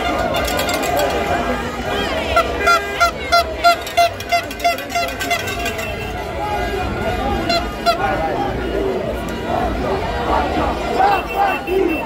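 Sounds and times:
horn tooting short notes: 0.0 - 8.2
crowd noise: 0.0 - 12.0.

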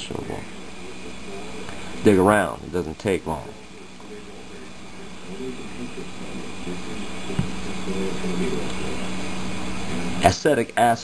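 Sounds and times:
low hum: 0.0 - 10.8.

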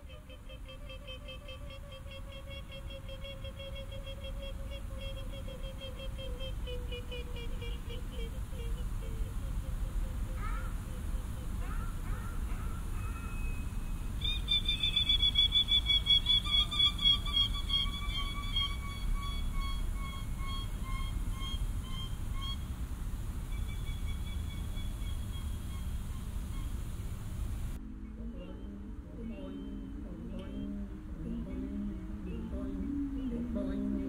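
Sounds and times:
human voice imitating bird call: 0.0 - 11.7
steady low rumble: 13.8 - 34.0.

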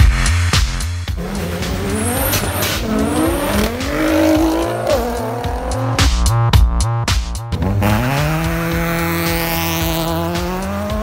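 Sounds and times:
electronic music with steady beat: 0.0 - 11.0
racing car engine at full throttle: 0.8 - 6.4, 7.4 - 11.0.

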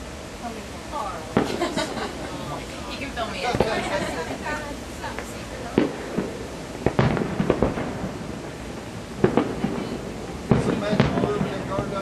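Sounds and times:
firework shells bursting: 3.4 - 4.2, 5.0 - 12.0
rumble: 4.8 - 12.0.

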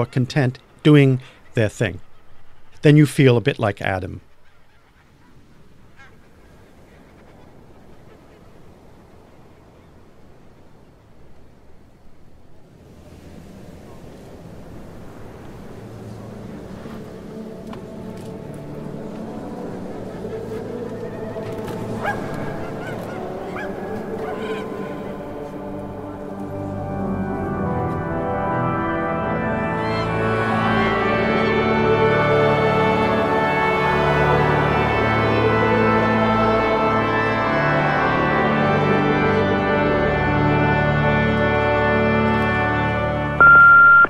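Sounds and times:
geese honking: 0.0 - 9.4, 15.0 - 43.5
low music bed: 12.6 - 44.0.

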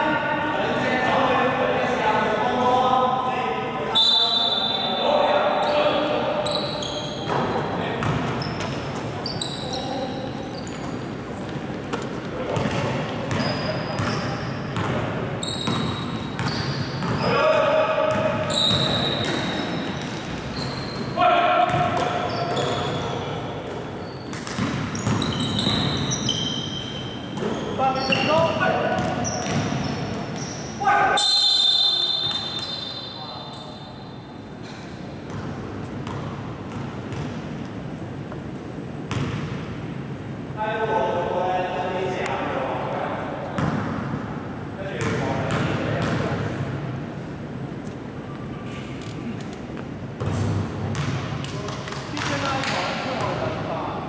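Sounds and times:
sneakers squeaking on wooden floor: 4.0 - 17.5, 18.1 - 37.8
basketball bouncing: 7.2 - 8.7, 11.9 - 14.2, 15.6 - 17.2, 18.1 - 20.4, 21.7 - 22.7, 24.3 - 26.0, 29.0 - 29.8, 35.3 - 37.4, 39.1 - 39.6, 45.0 - 46.2, 50.2 - 52.4
players shouting: 30.8 - 31.2.

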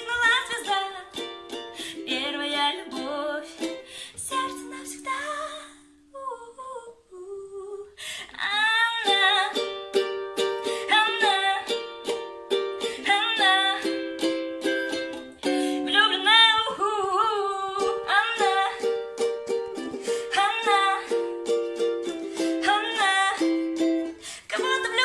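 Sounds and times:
strummed ukulele: 0.0 - 6.0, 8.7 - 25.0
woman singing with vibrato: 0.0 - 12.2, 12.8 - 25.0.

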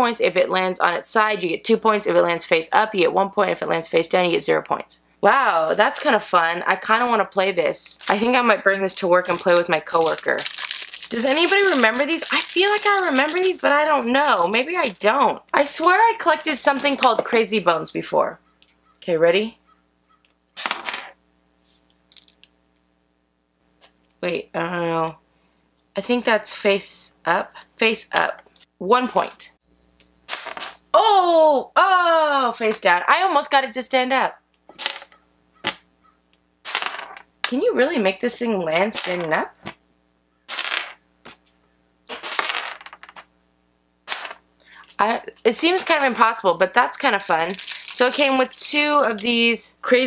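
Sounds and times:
plastic figures clattering on tray: 42.1 - 43.2.

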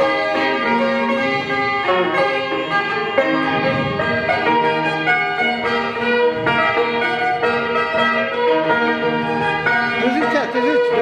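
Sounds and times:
folk dance band with electric guitar: 0.0 - 11.0.

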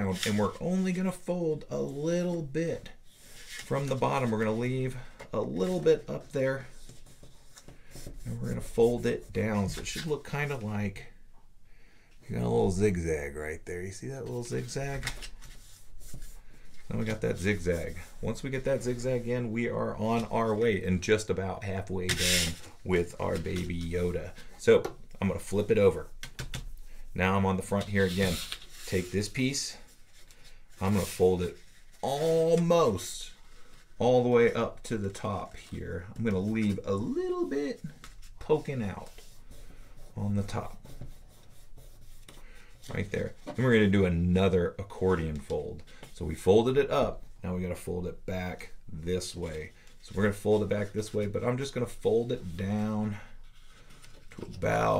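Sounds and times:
paper rustling: 0.0 - 1.2, 3.1 - 10.6, 14.5 - 24.5, 27.6 - 43.9, 49.2 - 54.9
fingers rubbing paper fold: 21.8 - 24.5, 25.5 - 32.7, 34.7 - 43.5.

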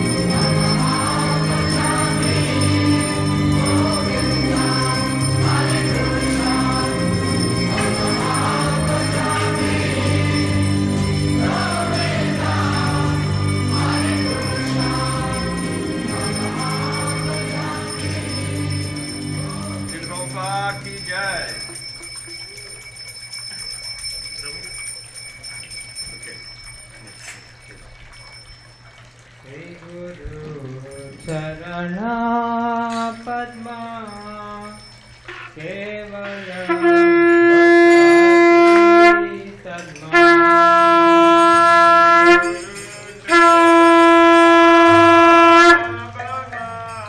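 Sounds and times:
light bell ringing: 0.0 - 29.1, 32.8 - 35.5, 42.4 - 43.9, 46.1 - 47.0
conch shell blasts: 36.6 - 39.3, 40.1 - 46.1.

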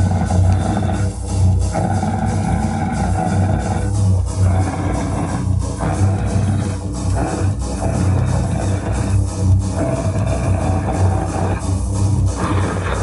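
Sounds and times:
electric guitar and bass chords: 0.0 - 13.0.

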